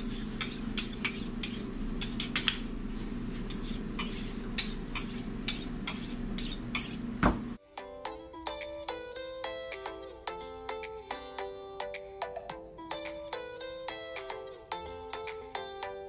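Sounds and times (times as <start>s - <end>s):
steady low hum: 0.0s - 7.6s
music: 7.6s - 16.0s.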